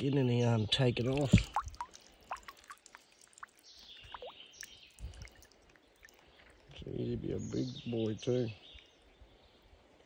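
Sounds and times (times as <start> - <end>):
water dripping into shallow water: 0.0 - 6.8, 8.0 - 9.1.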